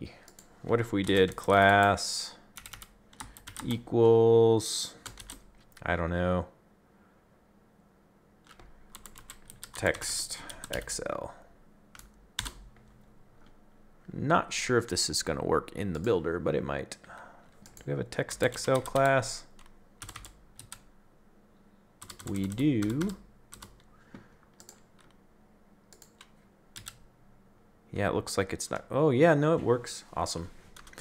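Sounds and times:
low room noise: 0:00.0 - 0:31.0
computer keyboard keystrokes: 0:02.6 - 0:03.7, 0:05.0 - 0:05.8, 0:08.4 - 0:10.0, 0:12.0 - 0:12.7, 0:17.6 - 0:20.9, 0:22.0 - 0:23.9, 0:24.5 - 0:25.2, 0:25.9 - 0:27.0, 0:30.8 - 0:31.0.

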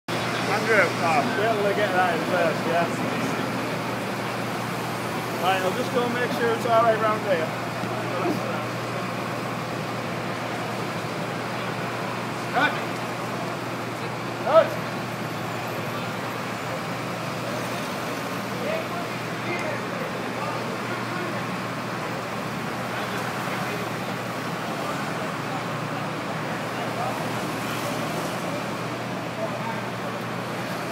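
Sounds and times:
crane engine rumble: 0:00.1 - 0:30.9
faint voices: 0:00.1 - 0:30.9.

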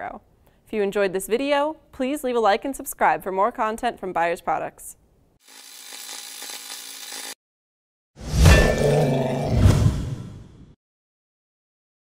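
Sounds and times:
hissing sizzling sound: 0:05.4 - 0:07.4.

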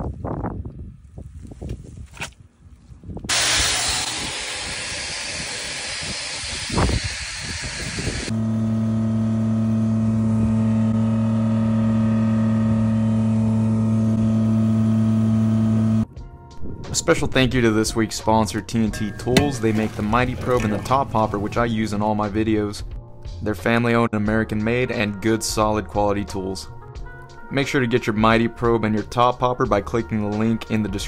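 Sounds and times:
loud rushing hiss: 0:03.3 - 0:08.3
vacuum pump humming: 0:03.3 - 0:16.0, 0:19.2 - 0:21.6.

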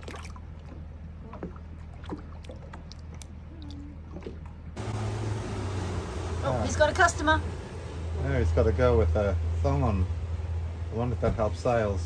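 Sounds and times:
water lapping with small splashes: 0:00.0 - 0:05.0
steady low hum: 0:00.0 - 0:12.0.

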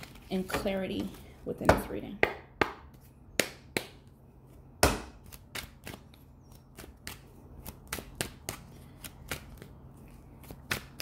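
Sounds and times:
cards being shuffled: 0:00.0 - 0:00.4, 0:05.2 - 0:11.0.

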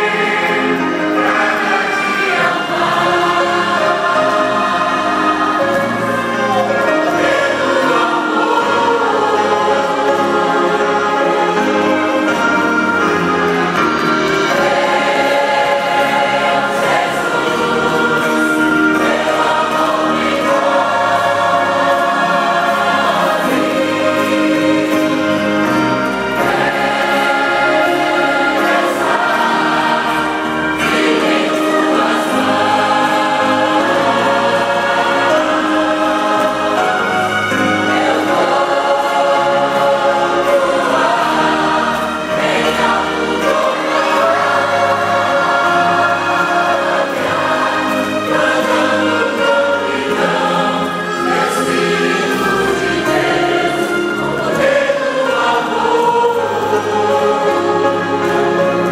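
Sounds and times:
mixed choir singing a hymn: 0:00.0 - 0:58.9.

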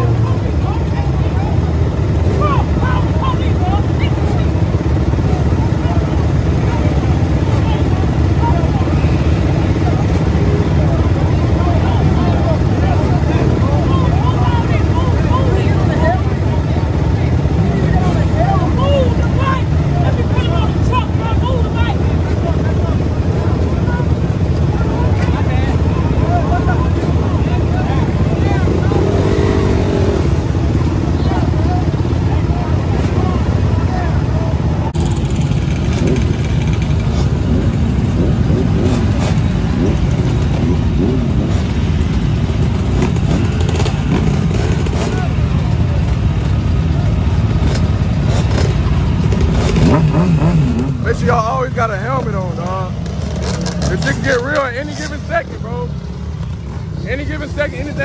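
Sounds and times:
off-road engines rumbling: 0:00.0 - 0:58.0.

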